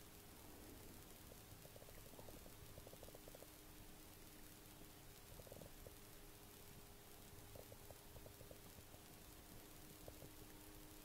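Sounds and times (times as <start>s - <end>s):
low steady hum: 0.0s - 11.0s
soft ticks: 0.0s - 11.0s.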